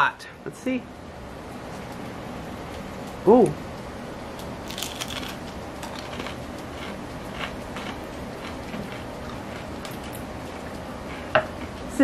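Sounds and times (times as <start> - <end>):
steady background hiss: 0.0 - 12.0
chip crunching while chewing: 4.6 - 10.3.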